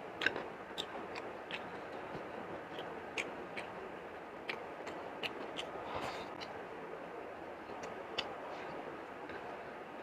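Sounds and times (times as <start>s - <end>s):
chewing with wet lip smacks: 0.2s - 3.8s, 4.4s - 5.8s.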